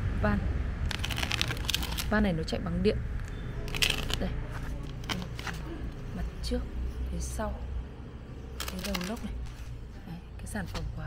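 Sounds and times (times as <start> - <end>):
crunching crackling clicks: 0.8 - 2.1, 3.2 - 5.6, 8.6 - 9.5.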